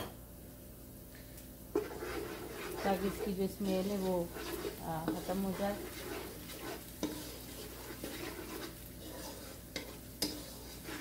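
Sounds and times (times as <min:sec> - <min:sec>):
onions sizzling in hot oil: 0:01.6 - 0:11.0
spoon stirring in pot: 0:01.7 - 0:11.0.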